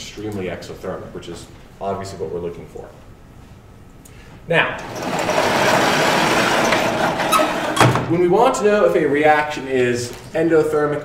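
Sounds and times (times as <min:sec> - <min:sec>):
sliding chalkboard rolling rumble: 0:04.8 - 0:07.8.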